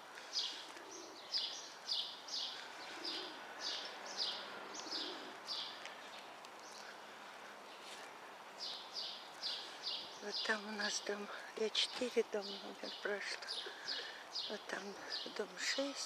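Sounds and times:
songbird chirping: 0:00.0 - 0:16.0.

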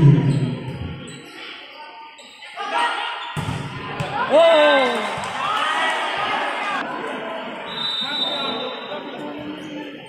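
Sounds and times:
players and spectators voices: 0:00.0 - 0:10.0.

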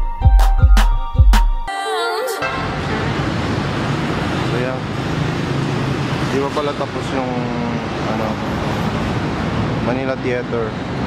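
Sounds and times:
street traffic: 0:02.4 - 0:11.0.

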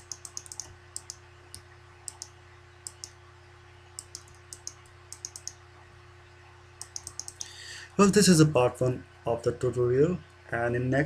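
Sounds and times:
computer control clicks: 0:00.0 - 0:03.2, 0:04.0 - 0:05.6, 0:06.8 - 0:07.6
low electrical hum: 0:00.0 - 0:11.0.

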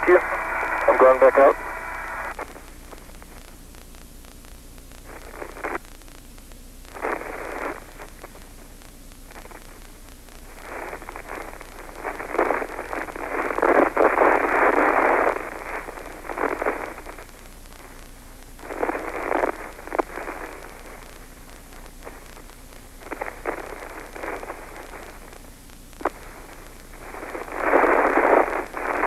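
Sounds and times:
radio channel hiss: 0:00.0 - 0:29.0.

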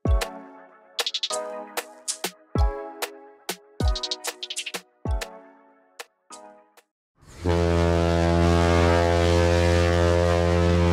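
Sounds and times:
ship's horn blast: 0:07.3 - 0:10.9.

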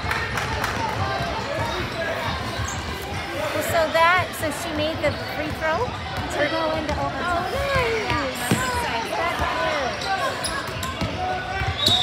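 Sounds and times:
spectators' voices: 0:00.0 - 0:12.0.

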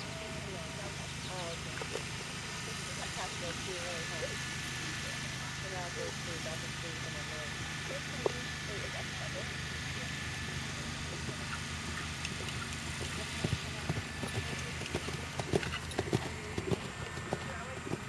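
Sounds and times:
faint indistinct voices: 0:00.0 - 0:18.0
steady low hum: 0:00.0 - 0:18.0.

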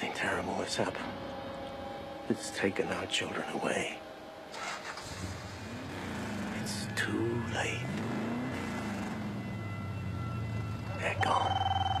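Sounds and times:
vehicle engine droning: 0:04.2 - 0:12.0.

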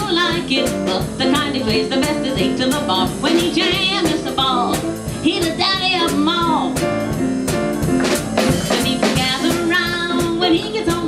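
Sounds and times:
woman singing: 0:00.0 - 0:06.9, 0:08.4 - 0:11.0
boogie-woogie piano: 0:00.0 - 0:11.0
drum kit beat: 0:00.0 - 0:11.0.

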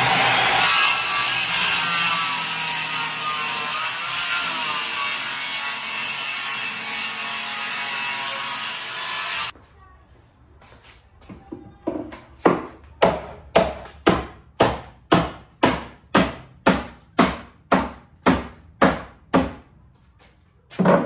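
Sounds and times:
electric planer shaving wood: 0:00.0 - 0:09.5.

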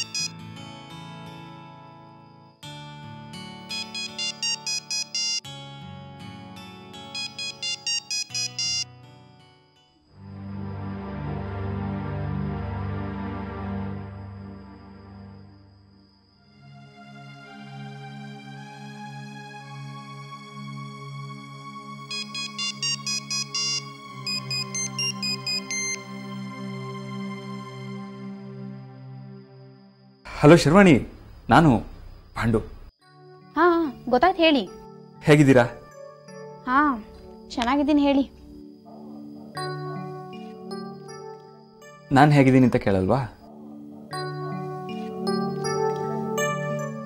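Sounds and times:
mobile phone ringtone: 0:00.0 - 0:00.4, 0:03.6 - 0:05.5, 0:07.1 - 0:09.0, 0:22.1 - 0:26.1
soft background music: 0:00.0 - 0:29.4, 0:33.0 - 0:47.0.

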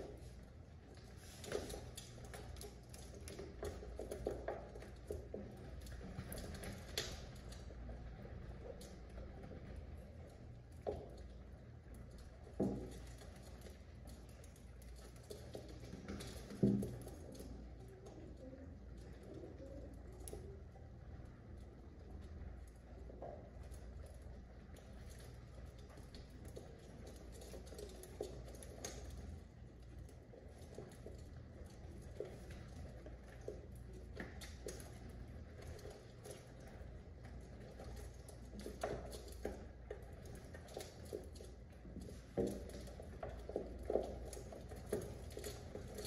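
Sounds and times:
small taps and knocks: 0:10.7 - 0:18.2.

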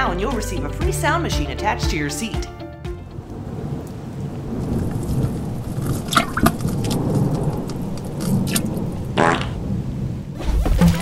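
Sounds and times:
steady rain hiss: 0:03.0 - 0:10.4
low thunder rumble: 0:03.2 - 0:10.4
sharp thunder cracks: 0:03.3 - 0:10.8.

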